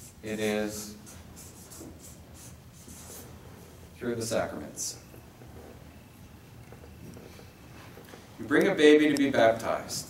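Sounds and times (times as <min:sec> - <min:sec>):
marker scratching on paper: 0:00.0 - 0:03.4.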